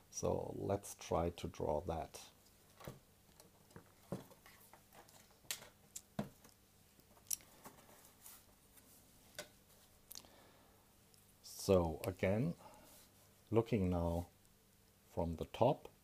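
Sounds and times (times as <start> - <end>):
faint paper rustling: 3.6 - 5.8, 7.0 - 10.1.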